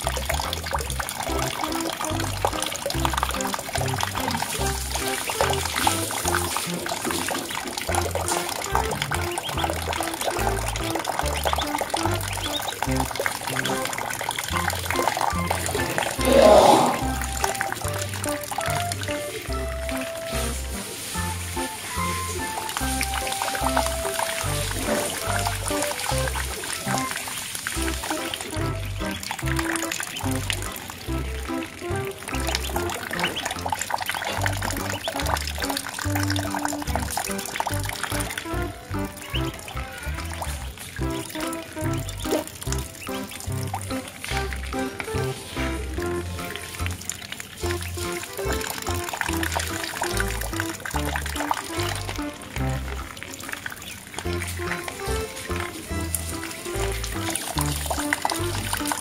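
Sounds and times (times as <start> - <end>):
water trickling and splashing: 0.0 - 59.0.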